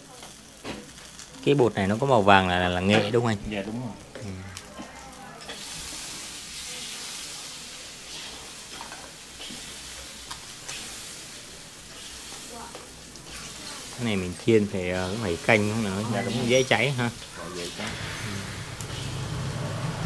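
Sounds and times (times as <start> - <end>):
batter sizzling in oil: 0.0 - 20.0.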